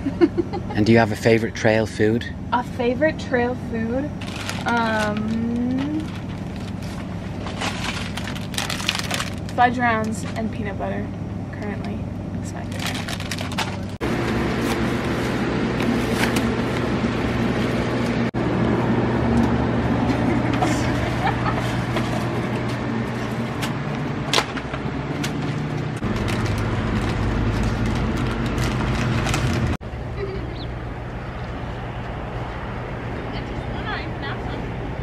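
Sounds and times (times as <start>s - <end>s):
low mechanical hum: 0.0s - 35.0s
plastic bags crinkling: 4.2s - 9.7s, 12.7s - 14.0s, 26.0s - 29.8s.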